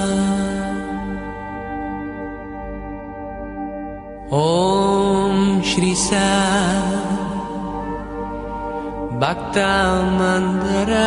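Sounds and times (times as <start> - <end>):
person singing chant: 0.0 - 2.0, 4.2 - 11.0
drone of held tones: 0.0 - 11.0.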